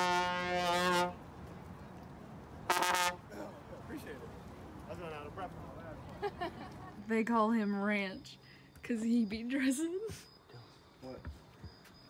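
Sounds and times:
trombone long note: 0:00.0 - 0:01.2, 0:02.7 - 0:03.2.

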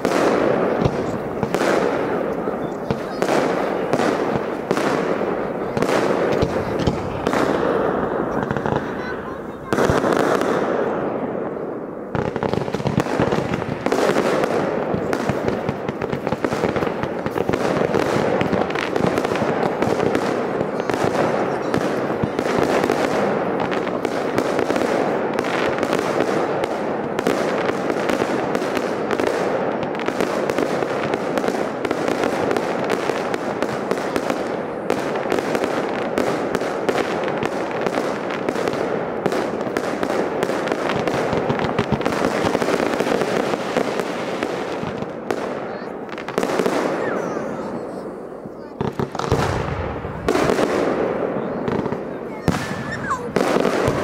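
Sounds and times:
fireworks bangs: 0:00.0 - 0:54.0
fireworks crackling: 0:00.0 - 0:54.0.

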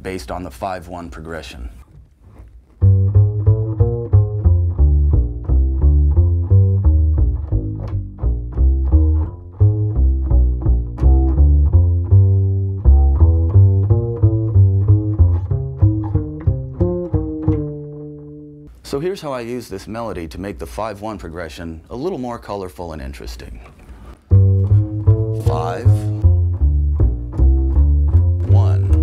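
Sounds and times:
double bass plucked notes: 0:02.8 - 0:18.7, 0:24.2 - 0:29.0.

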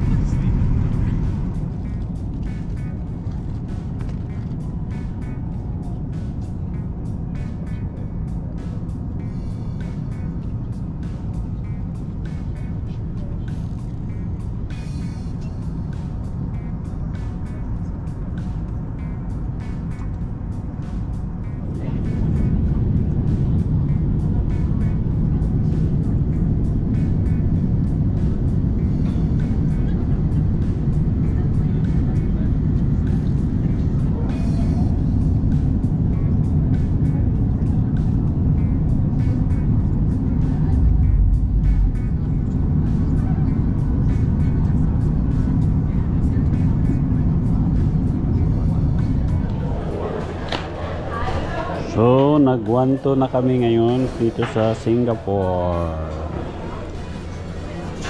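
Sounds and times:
airliner cabin engine rumble: 0:00.0 - 0:58.0
background music: 0:00.0 - 0:58.0.

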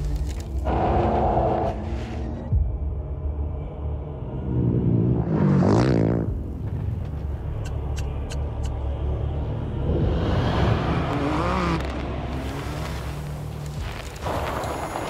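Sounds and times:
engines revving: 0:09.8 - 0:14.7.

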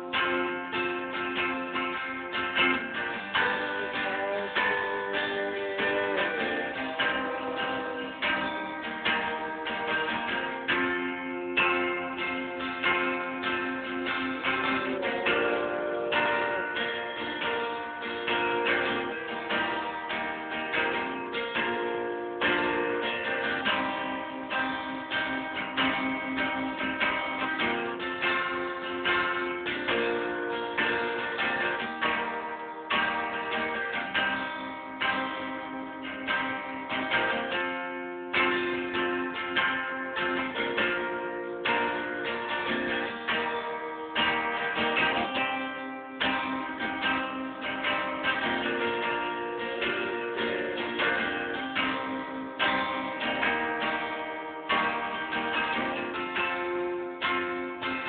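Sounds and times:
guitar strumming chords: 0:00.0 - 0:58.0.

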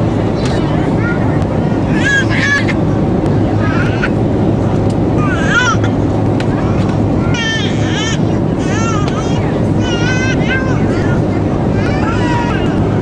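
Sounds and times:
airliner cabin drone: 0:00.0 - 0:13.0
passengers speaking: 0:00.0 - 0:13.0.

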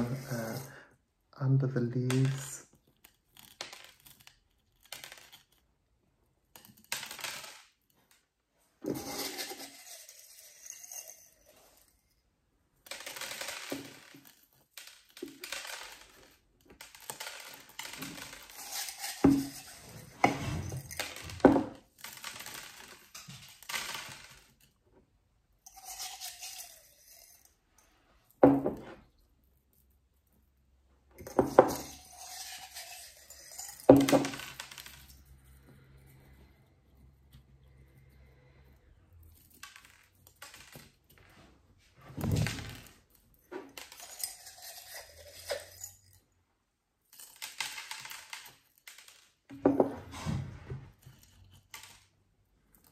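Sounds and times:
small stones clinking and rattling: 0:02.0 - 0:08.0, 0:08.8 - 0:24.8, 0:25.7 - 0:27.7, 0:31.2 - 0:35.6, 0:39.2 - 0:41.2, 0:42.1 - 0:46.2, 0:47.1 - 0:52.9.

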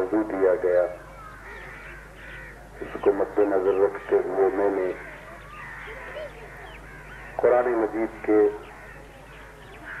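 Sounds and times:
crows cawing: 0:00.9 - 0:10.0.

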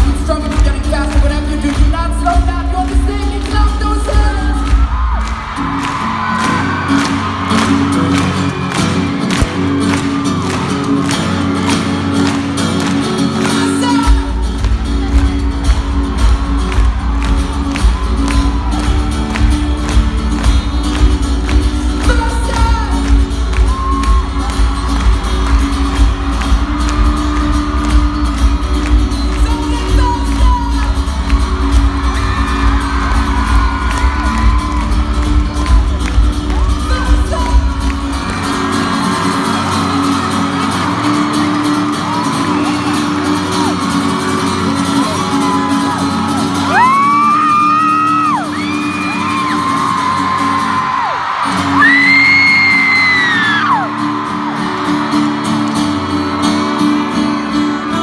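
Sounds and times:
man singing: 0:00.0 - 0:04.8, 0:13.4 - 0:14.4, 0:29.2 - 0:31.0, 0:36.5 - 0:38.1
live pop band: 0:00.0 - 0:58.0.

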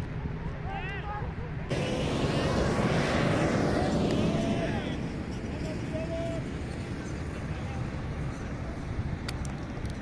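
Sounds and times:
steady low rumble: 0:01.5 - 0:10.0.

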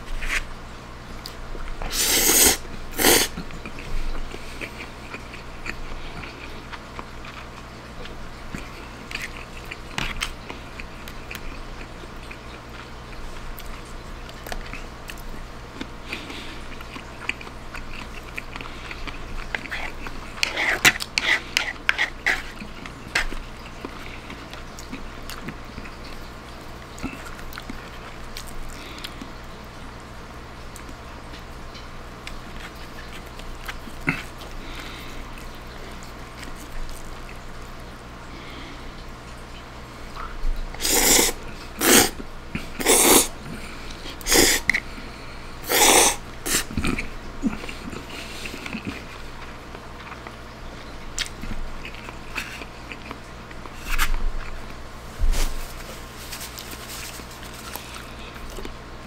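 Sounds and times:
chewing spaghetti: 0:01.2 - 0:29.8, 0:30.7 - 0:39.4, 0:40.0 - 0:54.8, 0:55.4 - 0:59.0
person slurping spaghetti: 0:01.8 - 0:03.4, 0:40.8 - 0:44.9, 0:45.6 - 0:49.1.

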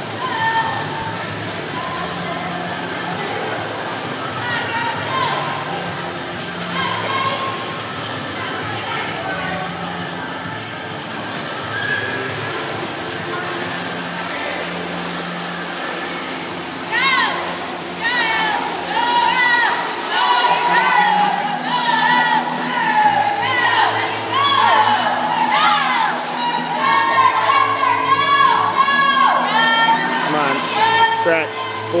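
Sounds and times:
echoing voices: 0:00.0 - 0:32.0
swimmers splashing: 0:00.0 - 0:32.0.

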